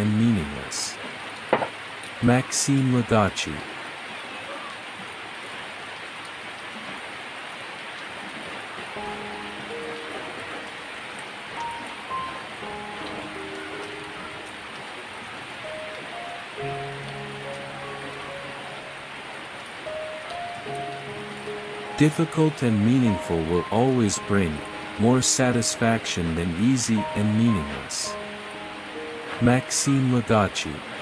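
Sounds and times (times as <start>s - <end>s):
steady rain falling: 0.0s - 31.0s
soft slow background music: 8.8s - 31.0s.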